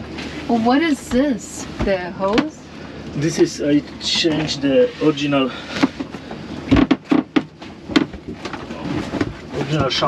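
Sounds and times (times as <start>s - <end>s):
knocks and thumps on a boat: 0.0s - 2.5s, 5.6s - 10.0s.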